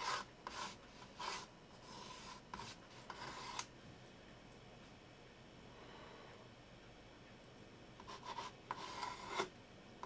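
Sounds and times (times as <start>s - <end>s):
pencil scratching on paper: 0.0s - 3.6s, 8.0s - 9.5s.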